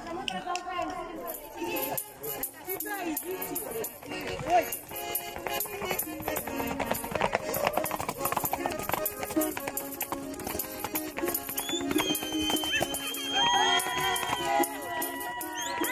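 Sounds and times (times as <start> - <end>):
horse hooves clip-clopping: 0.1 - 15.9
background music: 1.0 - 15.9.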